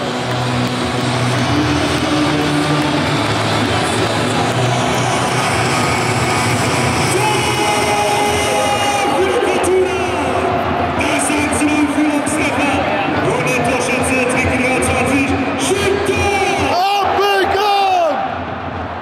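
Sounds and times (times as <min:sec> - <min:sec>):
crowd noise: 0:00.0 - 0:19.0.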